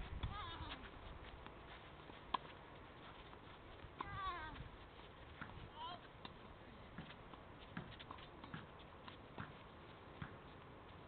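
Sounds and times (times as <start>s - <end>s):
racket hitting tennis ball: 6.2s - 9.6s.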